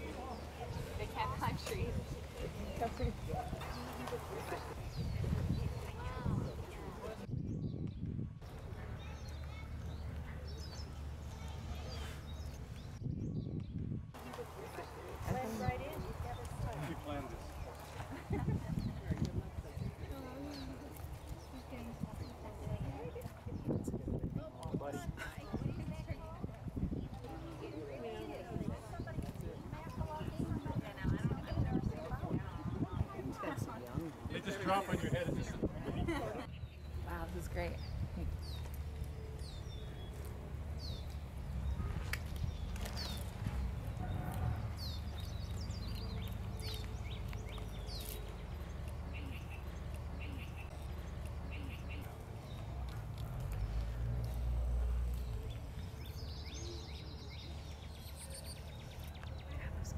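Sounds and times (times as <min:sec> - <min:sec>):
indistinct chatter: 0:00.0 - 0:07.3, 0:08.4 - 0:13.0, 0:14.1 - 0:59.9
birds chirping: 0:00.0 - 0:59.9.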